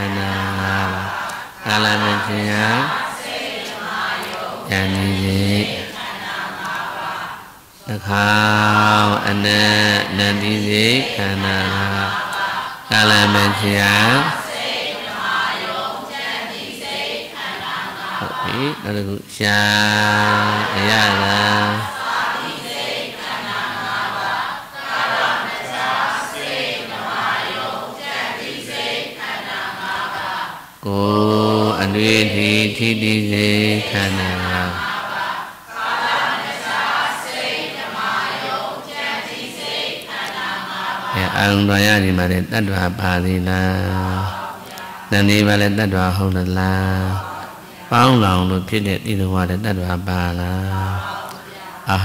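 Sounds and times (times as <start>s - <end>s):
man chanting on one pitch: 0.0s - 3.1s, 4.6s - 5.9s, 7.8s - 14.5s, 18.2s - 22.0s, 30.8s - 35.0s, 41.0s - 52.0s.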